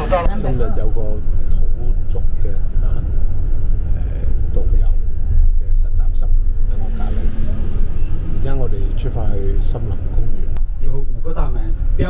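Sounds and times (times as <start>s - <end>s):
coach engine and road rumble: 0.0s - 12.0s.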